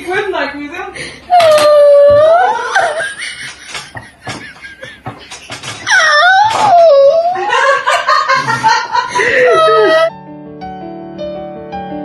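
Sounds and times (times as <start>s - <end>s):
woman squealing: 1.3s - 3.1s, 5.8s - 7.6s, 9.2s - 10.1s
woman laughing: 2.1s - 10.1s.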